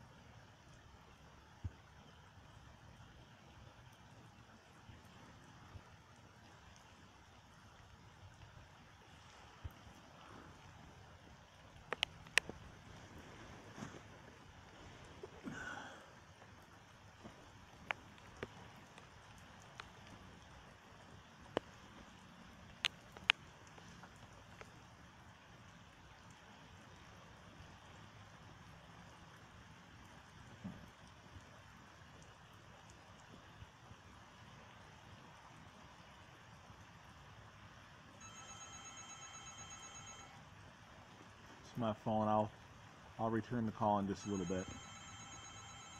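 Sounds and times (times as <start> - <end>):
heavy rain pouring: 11.6 - 21.2
raindrop taps: 11.6 - 24.8, 30.1 - 31.6
mobile phone ringing: 38.2 - 40.4, 44.2 - 45.9.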